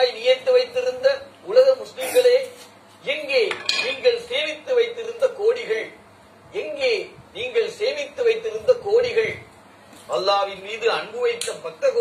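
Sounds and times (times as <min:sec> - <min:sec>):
man reciting a poem: 0:00.0 - 0:12.0.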